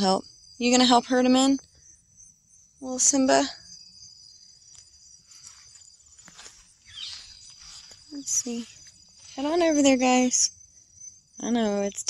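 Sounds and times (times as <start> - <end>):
crickets chirping: 0.0 - 12.0
soft rustle: 4.7 - 9.8.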